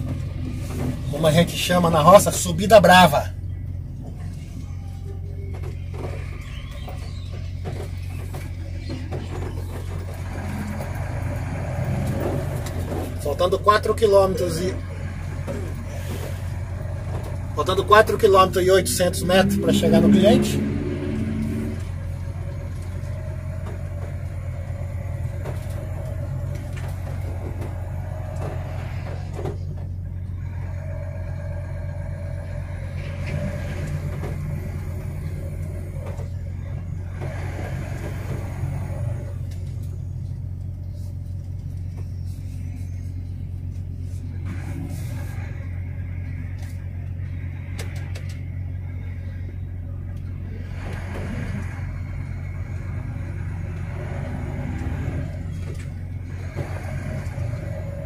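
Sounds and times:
truck diesel engine drone: 0.0s - 58.0s.

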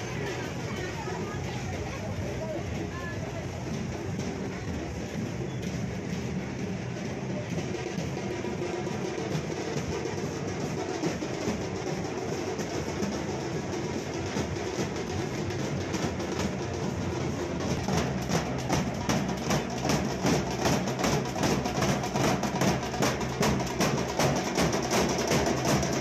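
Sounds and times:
bass drum band playing: 0.0s - 26.0s.

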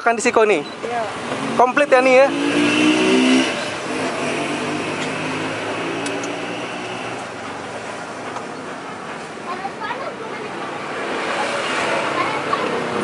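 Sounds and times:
street traffic noise: 0.0s - 13.0s
vehicle engine passing by: 1.1s - 8.3s, 10.5s - 13.0s.

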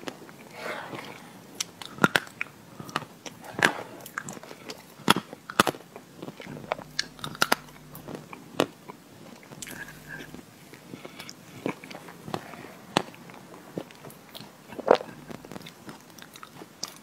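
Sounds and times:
wet chewing and mouth sounds: 0.0s - 17.0s.

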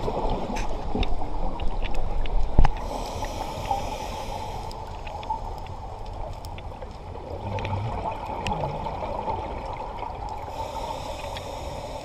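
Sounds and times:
underwater exhaled bubbles: 0.0s - 12.0s.

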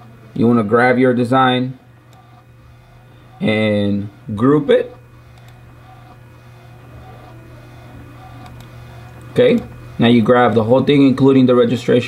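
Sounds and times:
low room hum: 0.0s - 12.0s
computer mouse clicks: 2.1s - 2.4s, 5.3s - 6.2s, 8.4s - 9.7s.

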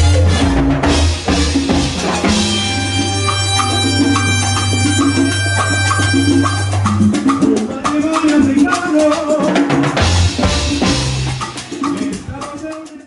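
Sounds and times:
salsa band music: 0.0s - 13.0s
person singing: 7.5s - 9.8s, 11.6s - 13.0s.

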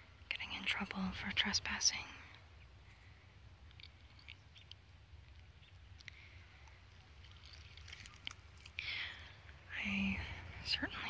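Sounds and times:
faint bird chirps: 2.4s - 8.3s.

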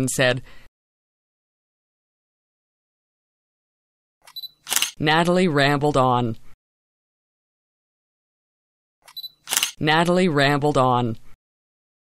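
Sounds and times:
person reading aloud: 0.0s - 0.6s, 5.0s - 6.6s, 9.8s - 11.4s.

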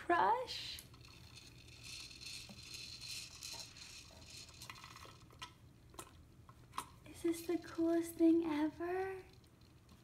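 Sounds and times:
plastic toys clicking and rattling: 0.6s - 6.2s, 6.8s - 10.0s.

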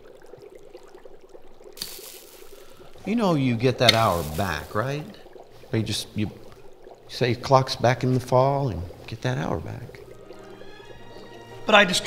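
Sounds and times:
steady fizzing hiss: 0.0s - 12.0s
small plop: 3.8s - 4.7s.

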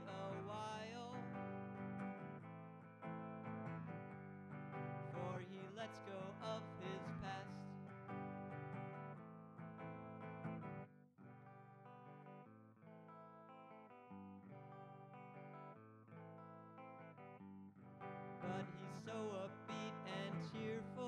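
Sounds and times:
electric guitar picked chords: 0.0s - 21.0s.

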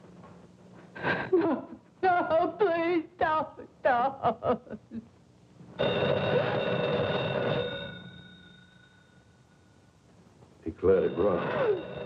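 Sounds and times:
telephone bell ringing: 5.8s - 9.5s, 10.8s - 12.0s.

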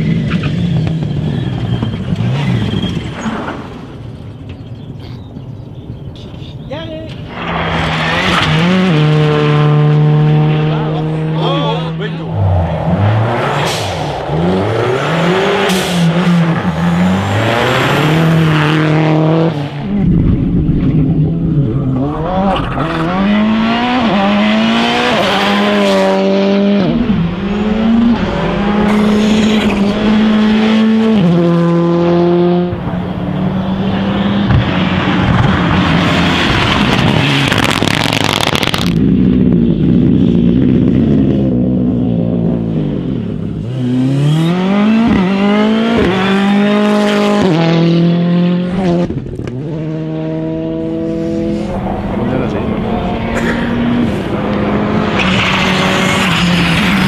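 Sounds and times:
rally car engines revving: 0.0s - 4.8s, 7.1s - 57.0s.

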